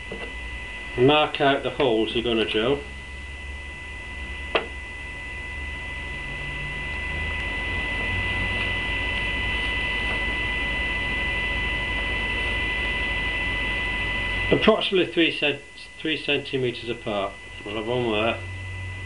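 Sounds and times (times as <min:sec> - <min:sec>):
electrical hum with whine: 0:00.0 - 0:19.0.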